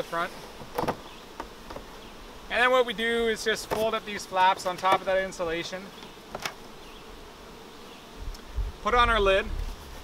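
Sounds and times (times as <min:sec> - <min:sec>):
honey bees buzzing: 0:00.0 - 0:10.0.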